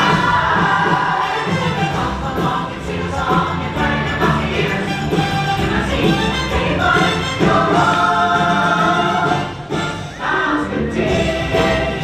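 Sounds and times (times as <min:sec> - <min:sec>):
choir singing: 0:00.0 - 0:12.0
parade music: 0:00.0 - 0:12.0.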